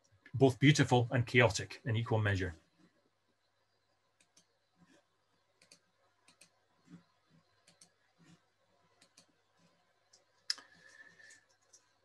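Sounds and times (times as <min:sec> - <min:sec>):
faint computer mouse clicks: 0:04.2 - 0:04.5, 0:05.6 - 0:08.4, 0:09.0 - 0:09.3.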